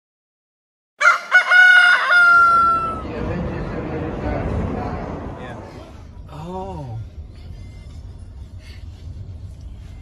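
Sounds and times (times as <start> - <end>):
rooster crowing: 1.0 - 3.0
low steady background rumble: 2.5 - 10.0.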